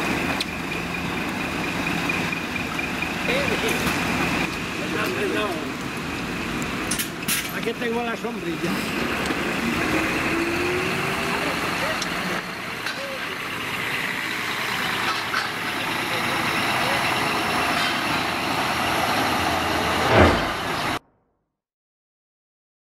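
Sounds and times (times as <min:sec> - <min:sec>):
bus diesel engine driving past: 0:00.0 - 0:21.0
tyres hissing on wet pavement: 0:00.0 - 0:21.0
people's voices: 0:03.2 - 0:05.8, 0:07.4 - 0:18.4
sharp thump: 0:20.0 - 0:20.8.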